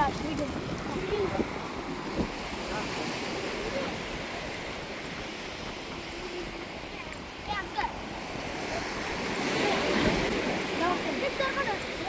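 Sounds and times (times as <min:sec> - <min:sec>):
surf washing onto beach: 0:00.0 - 0:12.0
wind on microphone: 0:00.0 - 0:12.0.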